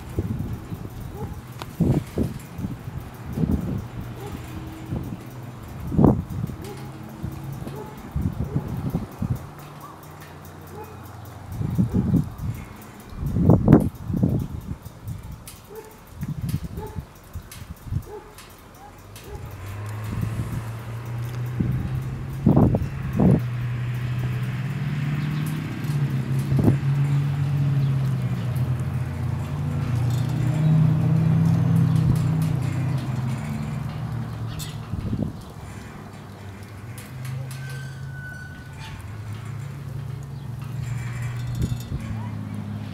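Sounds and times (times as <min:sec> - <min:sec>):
wind buffeting microphone: 0:00.0 - 0:42.9.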